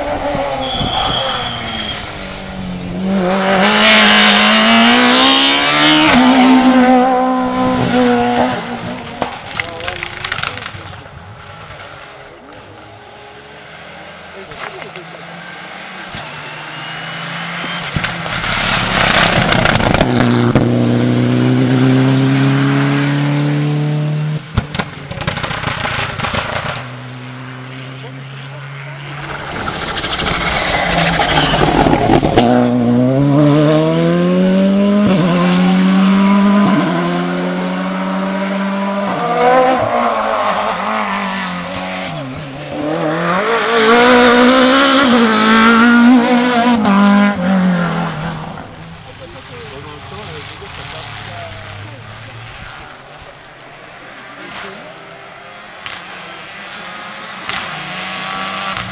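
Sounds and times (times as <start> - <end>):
rally car accelerating with upshifts: 0.0 - 10.8, 11.4 - 58.9
rally car braking: 0.0 - 58.9
pops and crackles on the overrun: 9.2 - 11.0.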